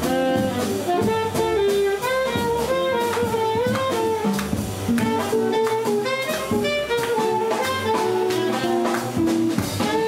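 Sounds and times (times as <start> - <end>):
drum kit with cymbals: 0.0 - 10.0
saxophone melody: 0.0 - 10.0
upright bass: 0.0 - 10.0
electric guitar: 2.4 - 10.0.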